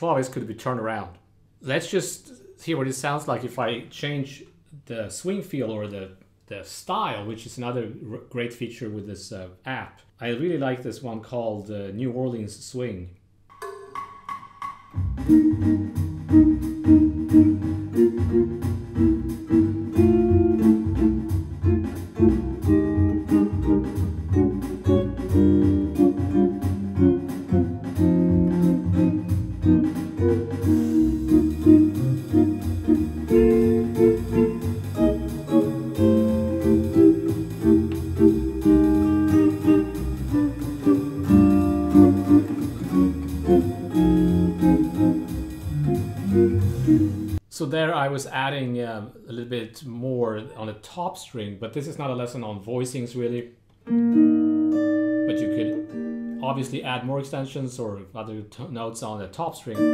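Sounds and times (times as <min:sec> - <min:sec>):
steady ticking backing rhythm: 0:13.5 - 0:47.4
guitar playing jazz chords: 0:15.0 - 0:47.4, 0:53.9 - 0:56.8.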